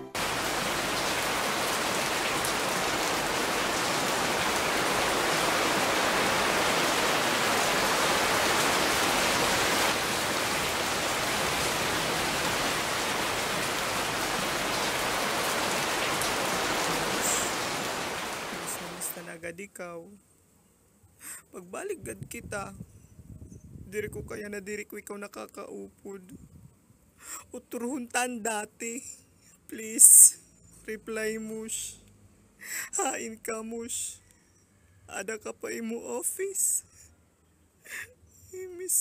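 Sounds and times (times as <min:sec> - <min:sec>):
steady rain falling: 0:00.1 - 0:19.4.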